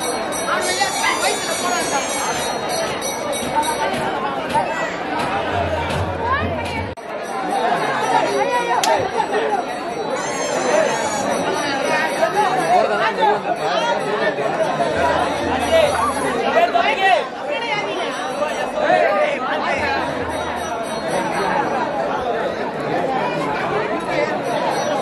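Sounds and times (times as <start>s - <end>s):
crowd babble: 0.0s - 25.0s.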